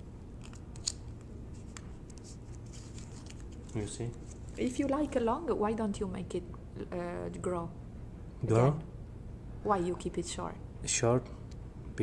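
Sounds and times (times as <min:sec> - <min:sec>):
low room hum: 0:00.0 - 0:12.0
plastic card clicks and scrapes: 0:00.4 - 0:04.4.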